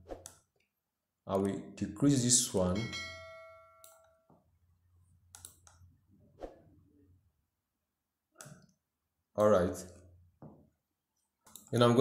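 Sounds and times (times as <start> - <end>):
short bell-like chime: 2.8 - 4.2
faint mouse clicks: 5.3 - 5.8, 8.4 - 8.8, 11.2 - 11.8.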